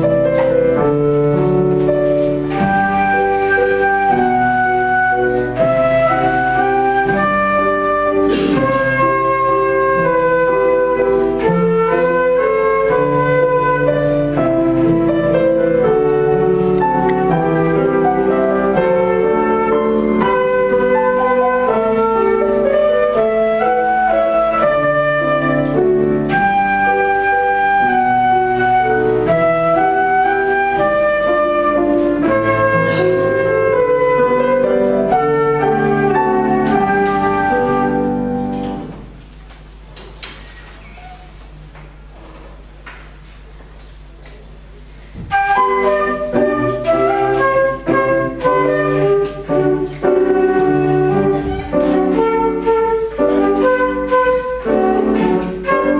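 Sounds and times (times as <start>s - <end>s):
flute melody: 0.0s - 39.0s, 45.2s - 55.9s
piano chords: 0.0s - 40.0s, 43.4s - 55.9s.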